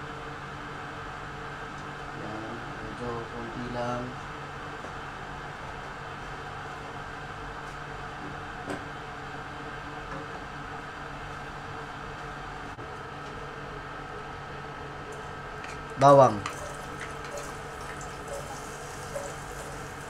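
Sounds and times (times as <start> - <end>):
ventilation fan hum: 0.0 - 20.0.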